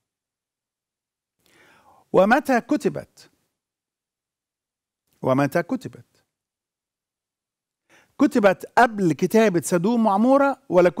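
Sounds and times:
man drawing breath: 0:01.4 - 0:02.1, 0:07.8 - 0:08.2.

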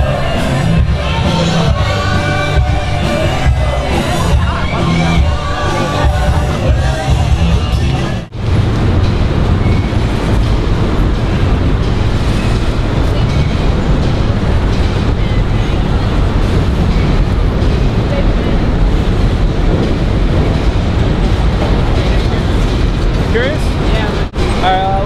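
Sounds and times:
freight train rumbling over steel bridge: 0:00.0 - 0:25.0.

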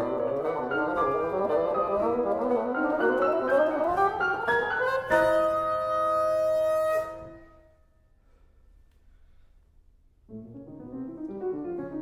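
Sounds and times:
piano: 0:00.0 - 0:08.4, 0:10.2 - 0:12.0.

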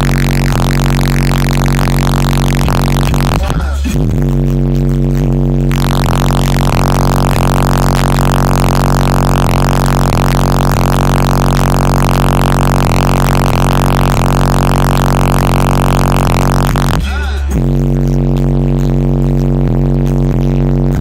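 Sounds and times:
distorted subwoofer bass note: 0:00.0 - 0:21.0.

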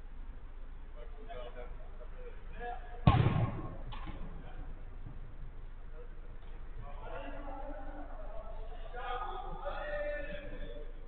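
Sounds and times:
football impact thud: 0:03.0 - 0:04.4.

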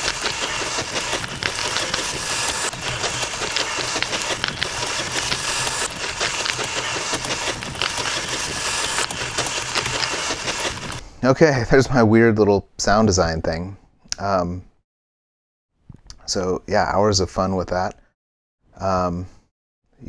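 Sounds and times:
typing clicks: 0:00.0 - 0:11.0.

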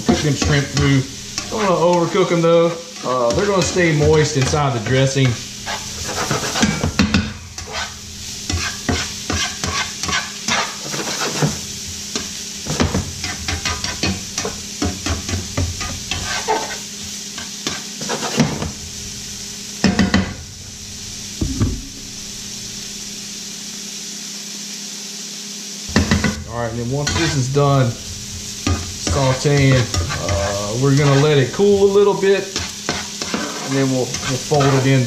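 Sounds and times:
metal spatula scraping a pan: 0:00.0 - 0:18.7, 0:26.0 - 0:35.0
seafood sizzling in a pan: 0:00.0 - 0:35.0
spatula knocks: 0:21.4 - 0:22.0.

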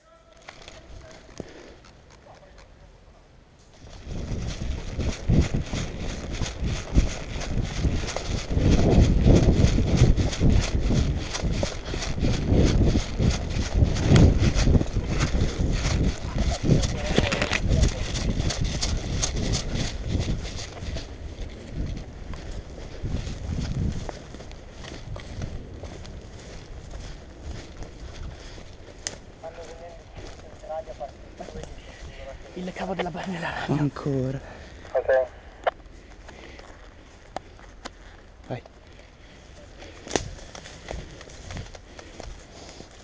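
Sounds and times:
footsteps running through brush: 0:00.0 - 0:02.8, 0:03.6 - 0:34.9, 0:35.8 - 0:43.0
gear jostling: 0:03.6 - 0:30.6.

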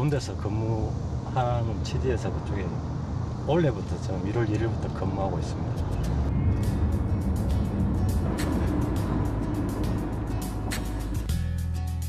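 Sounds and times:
car driving rumble: 0:00.0 - 0:11.4
background music: 0:06.3 - 0:12.0.

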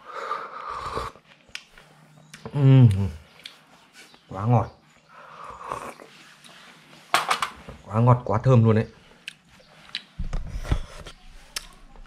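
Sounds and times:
person slurping broth: 0:00.2 - 0:01.2, 0:05.4 - 0:06.2.

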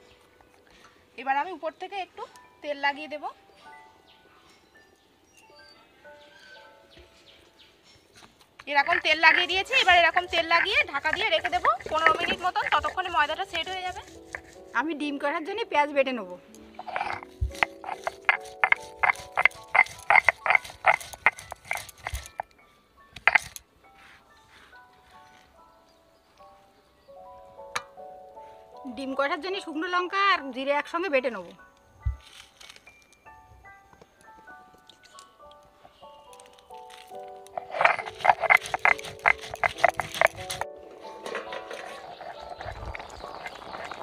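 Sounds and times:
stone roller rasping on slab: 0:08.8 - 0:14.7, 0:16.8 - 0:22.4, 0:37.5 - 0:44.0.

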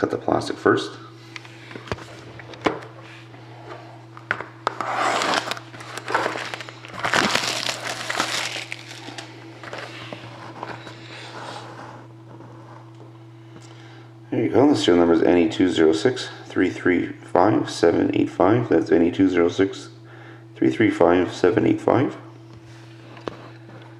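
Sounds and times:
steady low hum: 0:00.0 - 0:23.9
plastic shrink wrap crinkling: 0:05.0 - 0:09.8.

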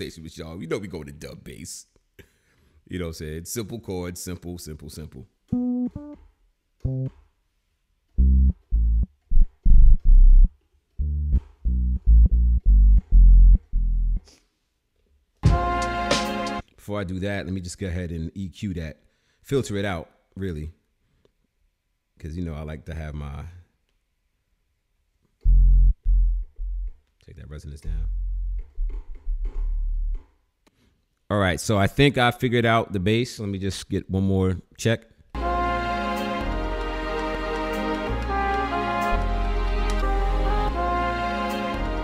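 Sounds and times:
short bass keyboard notes: 0:05.5 - 0:06.2, 0:06.8 - 0:07.2, 0:08.2 - 0:14.2, 0:25.5 - 0:27.0.

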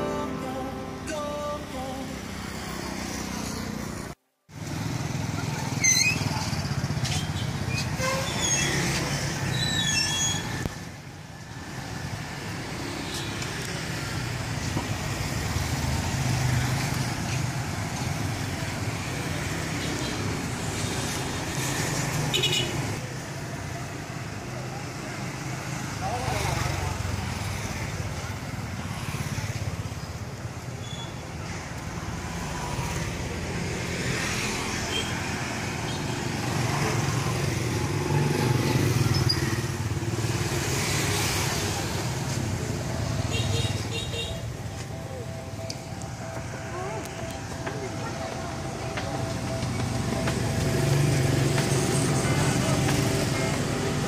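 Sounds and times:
motorcycles and scooters passing: 0:01.6 - 0:09.6, 0:10.7 - 0:54.0
people talking: 0:44.2 - 0:54.0.

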